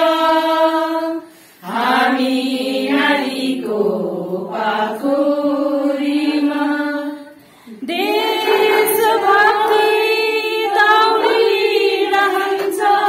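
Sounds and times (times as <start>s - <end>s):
women singing together: 0.0s - 13.0s.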